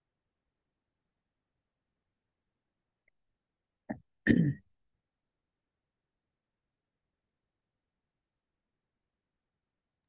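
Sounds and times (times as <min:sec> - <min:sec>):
person clearing throat: 0:04.2 - 0:04.6.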